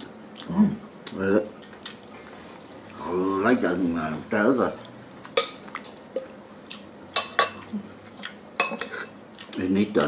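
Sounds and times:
spoon clinking on ceramic bowls: 0:07.2 - 0:07.7, 0:08.6 - 0:09.2.

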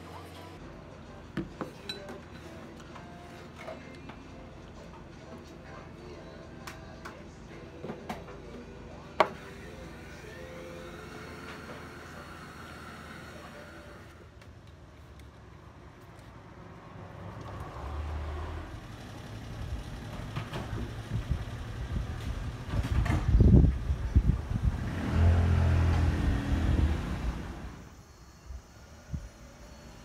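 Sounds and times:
vehicle passing: 0:16.3 - 0:20.4, 0:24.1 - 0:27.8
second engine passing: 0:16.4 - 0:22.8, 0:23.8 - 0:27.9.

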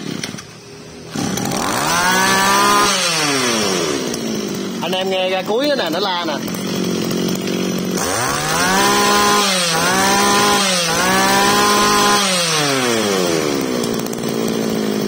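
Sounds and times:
brush cutter engine revving: 0:00.0 - 0:15.0.

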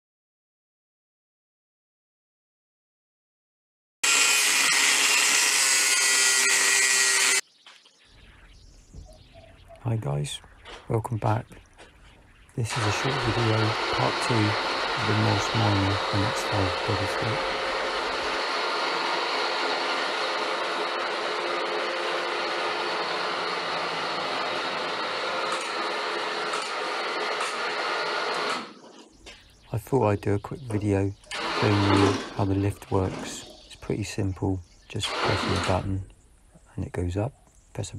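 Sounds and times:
angle grinder cutting metal: 0:04.0 - 0:07.4, 0:12.7 - 0:28.8, 0:31.3 - 0:33.4, 0:35.0 - 0:35.9
steady mechanical whir: 0:04.0 - 0:07.4, 0:12.5 - 0:29.4, 0:30.4 - 0:33.5, 0:34.9 - 0:36.0.

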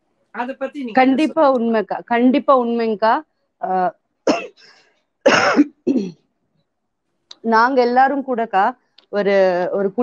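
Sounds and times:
woman coughing: 0:04.2 - 0:06.3.

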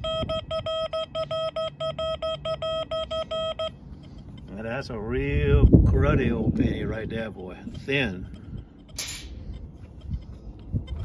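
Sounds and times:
metal detector beeps: 0:00.0 - 0:04.5.

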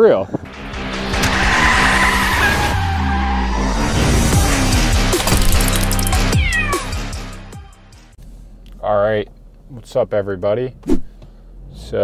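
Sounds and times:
intro music: 0:00.4 - 0:08.1
car tyres screeching: 0:00.7 - 0:04.7
cartoon cat meowing: 0:06.2 - 0:07.0.

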